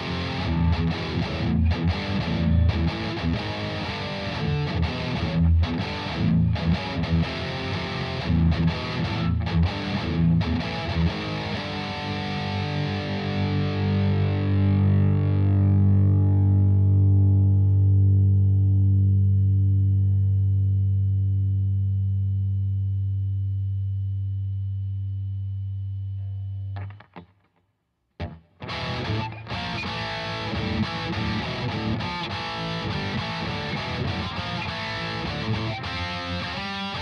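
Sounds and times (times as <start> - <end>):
distorted electric guitar: 0.0 - 27.6, 28.2 - 37.0.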